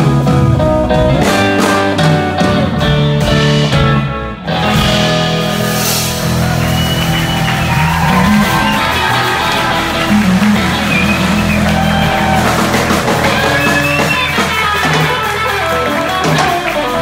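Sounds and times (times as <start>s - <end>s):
drum kit with cymbals: 0.0s - 17.0s
electric bass: 0.0s - 17.0s
electric guitar lead lines: 0.0s - 17.0s.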